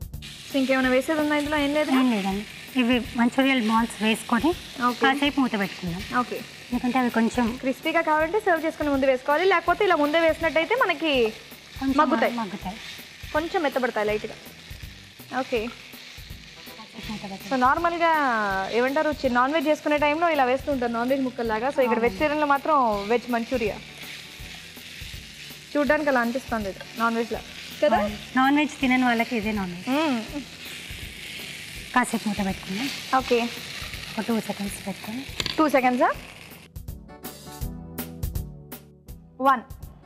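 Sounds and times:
rice and vegetables sizzling: 0:00.0 - 0:36.8
woman talking: 0:00.6 - 0:12.8, 0:15.3 - 0:15.7, 0:16.8 - 0:23.8, 0:25.8 - 0:30.5, 0:31.9 - 0:33.6, 0:34.2 - 0:36.2.

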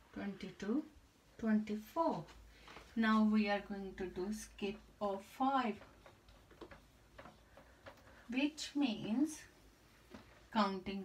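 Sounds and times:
marker tapping on whiteboard: 0:05.7 - 0:08.1.

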